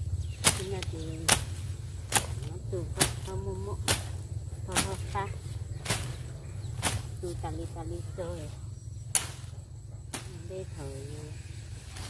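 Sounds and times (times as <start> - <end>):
blade swishing chops through brush: 0.4 - 5.2, 5.8 - 7.3.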